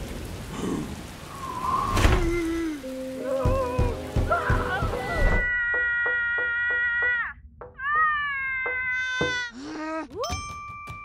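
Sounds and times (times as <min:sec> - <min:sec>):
cartoon rain falling: 0:00.0 - 0:10.3
knocking on window pane: 0:03.4 - 0:05.0.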